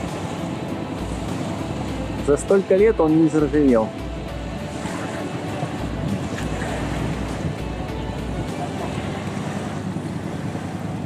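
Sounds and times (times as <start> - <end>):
wind on microphone: 4.0 - 11.0.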